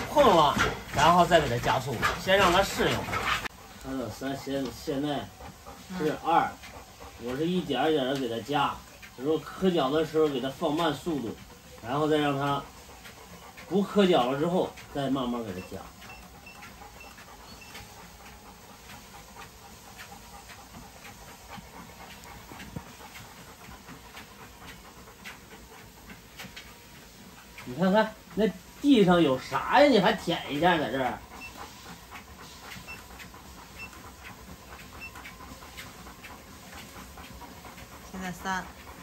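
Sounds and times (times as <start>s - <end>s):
dog paws pattering on belt: 0.0s - 39.0s
motorised treadmill running: 0.0s - 39.0s.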